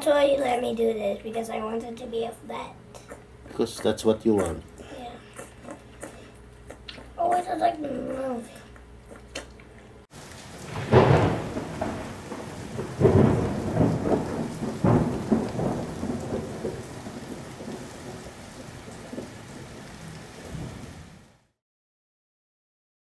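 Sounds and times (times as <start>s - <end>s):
thunder rolling: 10.1s - 21.4s
steady rain: 10.1s - 21.6s.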